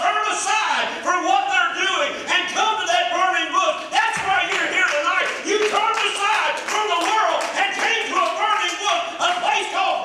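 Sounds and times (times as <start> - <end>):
man preaching loudly: 0.0 - 10.0
sharp hand claps: 4.2 - 9.5.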